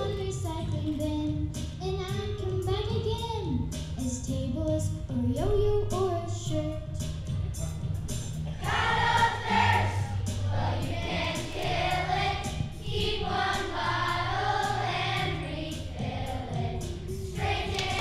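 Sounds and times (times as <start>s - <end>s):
musical accompaniment: 0.0s - 18.0s
children's choir singing: 8.5s - 18.0s.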